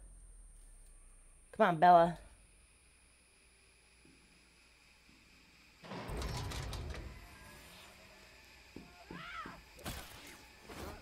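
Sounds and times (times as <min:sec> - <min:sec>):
heavy sliding door rumbling open: 0:05.8 - 0:07.5.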